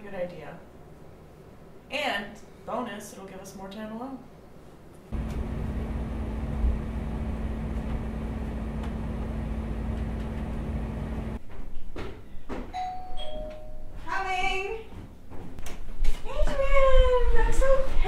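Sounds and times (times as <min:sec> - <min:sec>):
steady low humming drone: 0:05.1 - 0:11.4
two-tone doorbell chime: 0:12.8 - 0:14.0.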